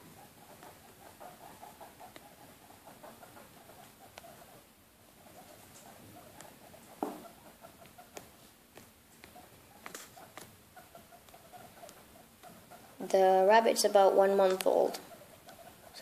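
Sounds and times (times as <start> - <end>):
guinea pig squeaking: 0.0 - 8.5, 9.2 - 16.0.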